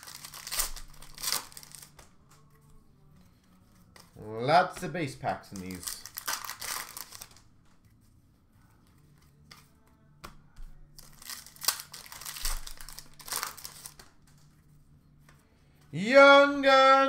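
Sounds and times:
plastic wrappers crinkling: 0.0 - 2.0, 5.4 - 7.5, 11.0 - 14.5
cards being shuffled: 0.0 - 15.9.

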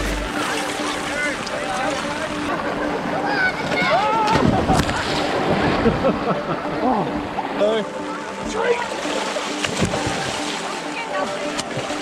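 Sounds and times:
people swimming and calling: 0.0 - 12.0.

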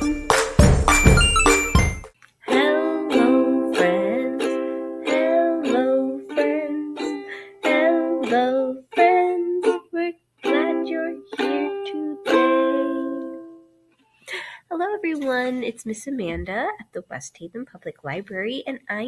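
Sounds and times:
ukulele strumming chords: 0.0 - 13.6
woman singing: 2.4 - 13.4.

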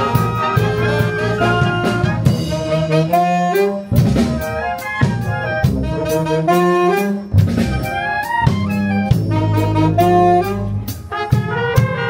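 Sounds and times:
sousaphone bass line: 0.0 - 12.0
wind band playing: 0.0 - 12.0.

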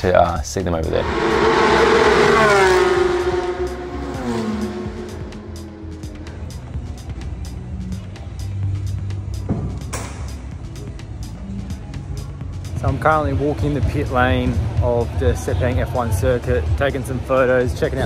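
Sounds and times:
race car passing at speed: 0.8 - 7.1.

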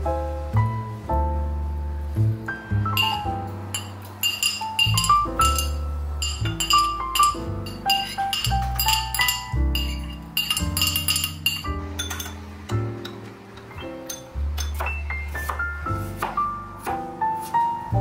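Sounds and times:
spoon scraping and stirring sauce: 3.0 - 12.3
metal spoon clinking glass bowls: 3.0 - 15.0.

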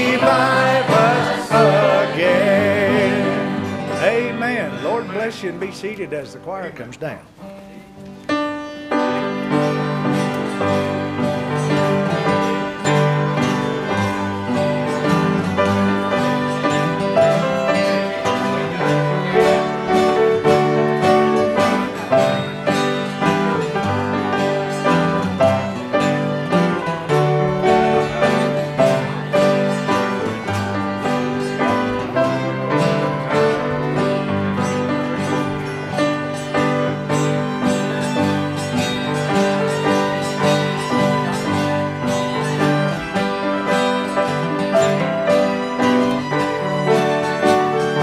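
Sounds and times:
fiddle: 0.0 - 6.5, 7.6 - 48.0
acoustic guitar strumming: 0.0 - 48.0
piano: 0.0 - 48.0.

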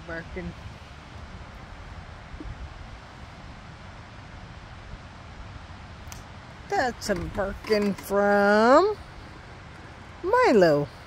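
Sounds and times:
outdoor background hiss: 0.0 - 11.0
wind on microphone: 0.0 - 11.0.

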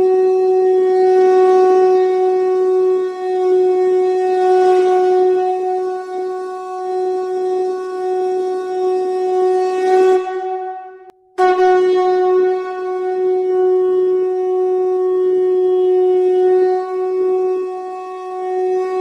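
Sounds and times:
conch shell blown: 0.0 - 19.0.

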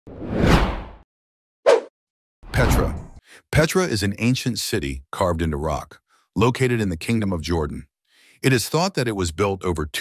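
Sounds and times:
whoosh: 2.5 - 3.2.

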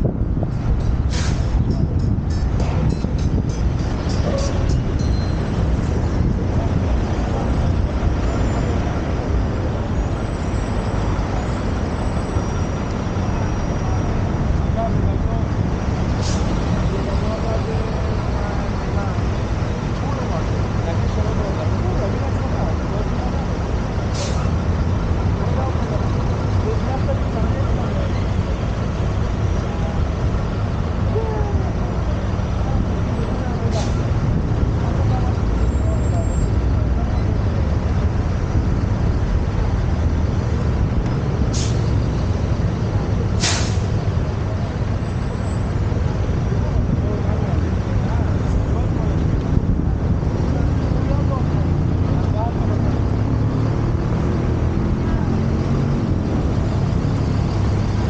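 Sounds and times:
low rumble of motor vehicles: 0.0 - 58.0
sharp hisses or clicks: 43.4 - 43.9.

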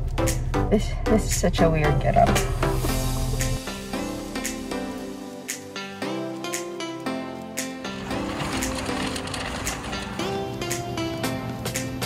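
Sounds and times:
shopping cart rattling: 8.0 - 11.0.

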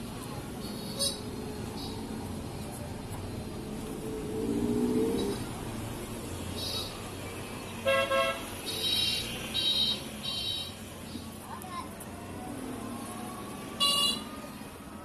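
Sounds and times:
passing street traffic: 0.0 - 15.0
low vehicle horn: 7.8 - 10.8, 13.8 - 14.3
sharp vehicle horn: 7.8 - 10.8, 13.8 - 14.3.

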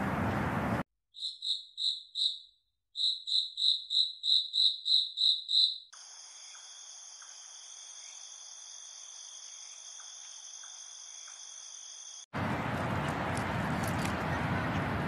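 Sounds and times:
crickets chirping: 1.2 - 12.3.

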